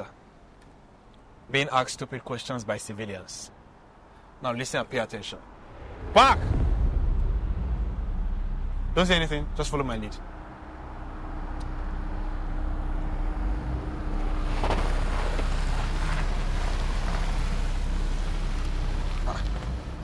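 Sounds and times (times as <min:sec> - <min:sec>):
low steady rumble: 0:03.6 - 0:20.0
car engine and tyre noise: 0:05.2 - 0:20.0.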